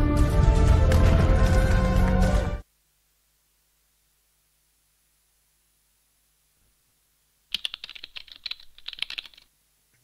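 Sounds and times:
rapid keyboard typing: 7.5s - 9.5s.

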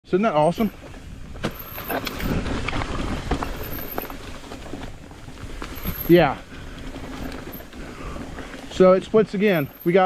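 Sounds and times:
bike tyres rolling on dirt: 0.1s - 10.0s.

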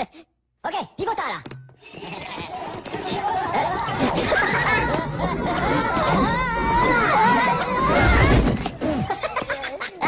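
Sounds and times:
high cartoon voices babbling: 2.0s - 10.0s.

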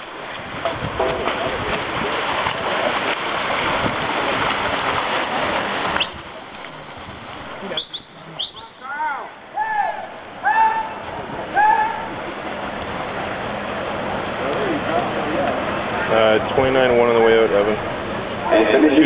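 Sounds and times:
swimmers splashing: 0.0s - 19.0s
high shouts: 8.6s - 12.2s.

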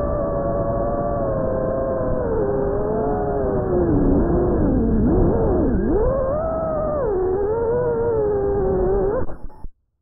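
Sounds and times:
drone motors whining: 0.0s - 9.3s.

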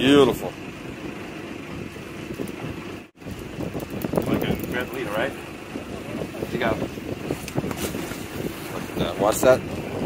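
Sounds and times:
boat engine rumbling: 0.0s - 10.0s.

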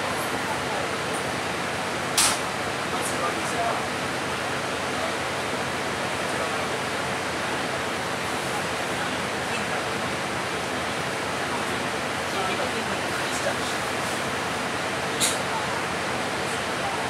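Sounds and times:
bus idling: 0.0s - 17.0s.

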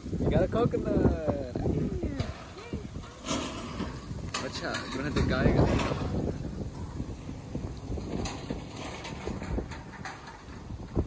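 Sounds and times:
wind noise on microphone: 0.0s - 11.0s.

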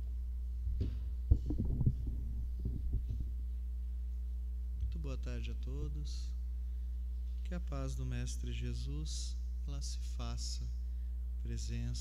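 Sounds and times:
mains hum: 0.0s - 12.0s
microphone being handled thumps: 0.6s - 3.4s.

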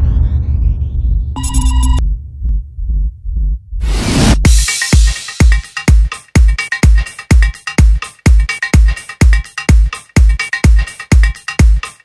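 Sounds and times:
deep throbbing bass pulses: 0.0s - 4.6s.

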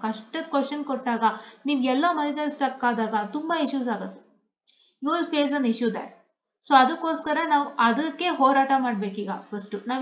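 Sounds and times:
person talking: 6.7s - 10.0s.

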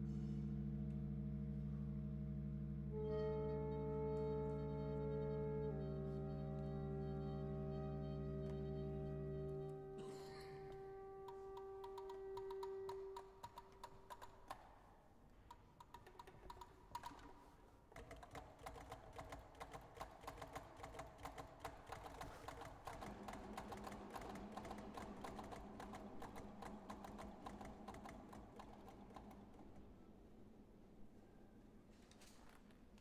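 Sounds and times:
low held tone: 0.0s - 11.7s
contemporary ensemble music: 0.0s - 32.6s
rapid tapping and clicking: 11.3s - 14.8s, 15.5s - 29.9s.

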